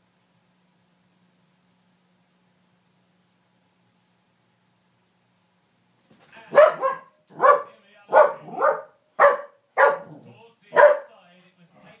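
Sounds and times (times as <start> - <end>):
dog barking excitedly: 6.5 - 11.1.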